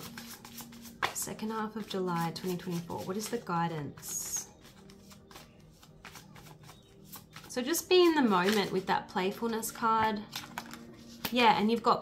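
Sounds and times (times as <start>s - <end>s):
cards being shuffled: 0.0s - 11.9s.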